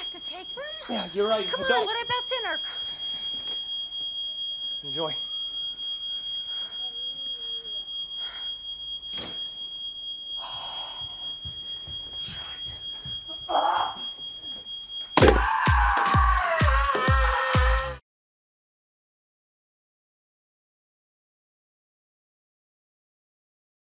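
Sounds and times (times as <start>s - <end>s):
smoke alarm high tone: 0.0s - 18.0s
loud music with heavy beat: 15.2s - 18.0s
woman screaming: 15.2s - 18.0s.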